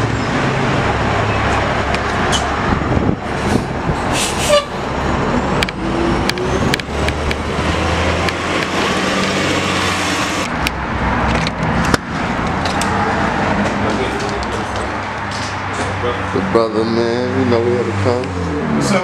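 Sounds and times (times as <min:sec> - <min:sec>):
bus engine drone: 0:00.0 - 0:19.0
air brake hiss: 0:04.1 - 0:04.7.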